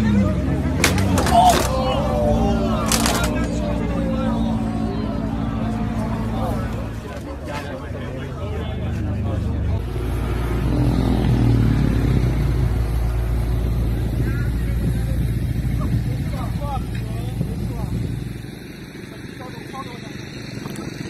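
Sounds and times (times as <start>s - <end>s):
car engine rumbling: 0.0s - 21.0s.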